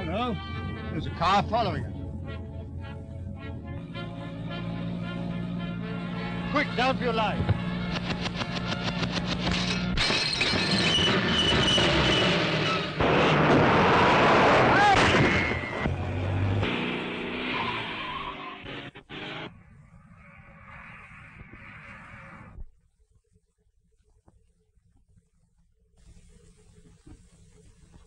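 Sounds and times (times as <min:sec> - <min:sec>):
rapid gunfire: 0:07.8 - 0:10.3
loud crash with breaking glass: 0:09.5 - 0:15.8.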